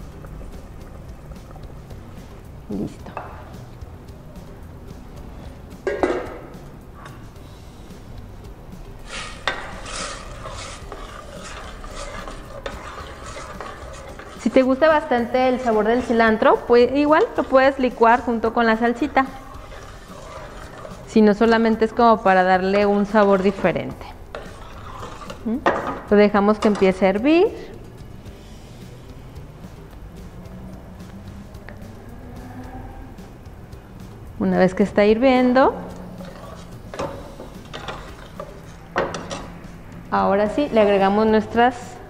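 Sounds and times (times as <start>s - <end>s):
utensil scraping steel saucepan: 9.0s - 27.7s, 35.5s - 42.0s
utensil knocking on saucepan: 9.3s - 21.8s.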